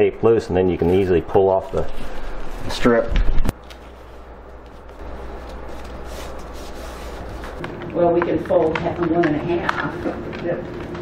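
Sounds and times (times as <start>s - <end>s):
steady low hum: 0.0s - 11.0s
faint rustling and shuffling: 0.8s - 8.9s.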